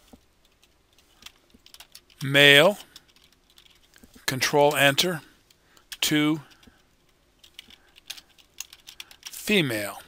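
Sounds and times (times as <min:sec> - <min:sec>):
computer keyboard typing: 0:00.4 - 0:02.2, 0:07.4 - 0:09.4.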